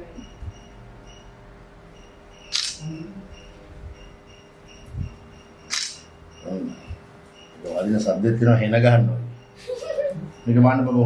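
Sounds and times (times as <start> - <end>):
phone camera shutter click: 2.5 - 2.8, 5.7 - 6.1.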